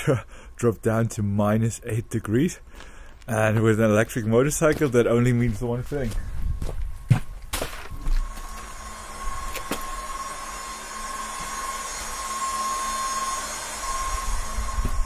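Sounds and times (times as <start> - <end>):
high-pitched charging whine: 7.9 - 15.0.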